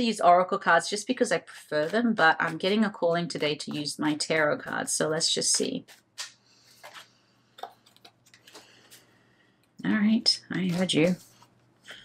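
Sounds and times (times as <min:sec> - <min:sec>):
cards being shuffled: 0:05.6 - 0:09.1.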